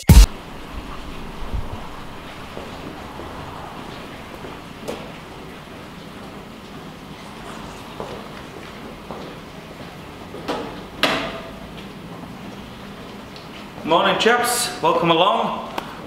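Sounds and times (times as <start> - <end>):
steady rushing machinery noise: 0.1 - 9.1.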